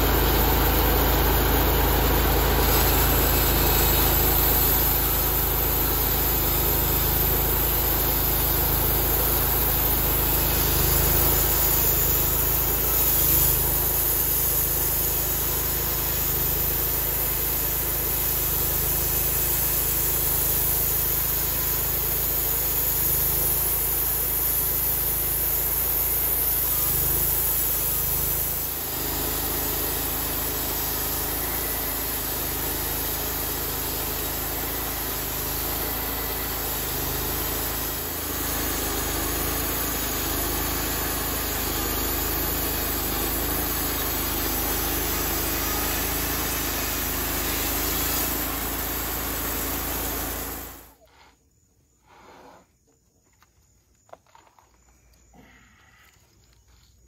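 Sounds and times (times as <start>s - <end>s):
band saw cutting wood: 0.0s - 51.0s
gasoline engine running: 0.0s - 51.0s.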